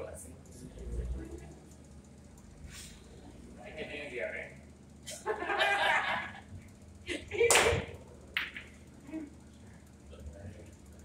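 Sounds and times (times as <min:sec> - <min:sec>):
billiard balls clicking: 0:08.3 - 0:08.9.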